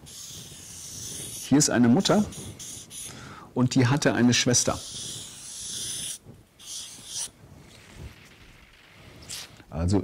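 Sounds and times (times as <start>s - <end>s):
marker scratching on paper: 0.0s - 3.1s, 4.6s - 7.8s.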